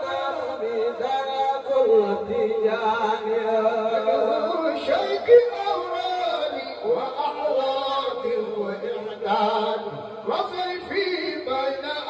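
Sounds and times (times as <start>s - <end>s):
men chanting: 0.0s - 12.0s.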